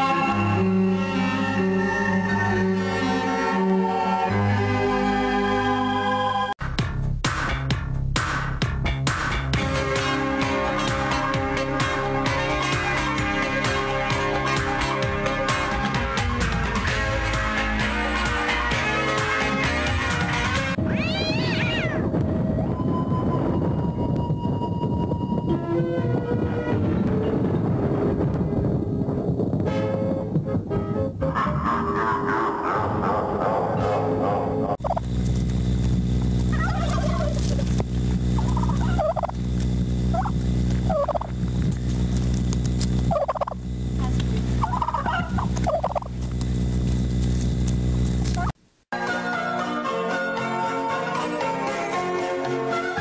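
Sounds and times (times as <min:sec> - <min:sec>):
music: 0:00.0 - 0:20.9, 0:21.9 - 0:33.0, 0:48.9 - 0:53.0
steady low drone: 0:00.0 - 0:21.0, 0:22.0 - 0:48.6
low rumble: 0:20.7 - 0:48.6
meow-like call: 0:20.8 - 0:22.1
turkeys gobbling: 0:31.4 - 0:35.1, 0:36.5 - 0:37.8, 0:38.4 - 0:39.5, 0:40.1 - 0:40.3, 0:40.9 - 0:41.4, 0:43.1 - 0:46.2.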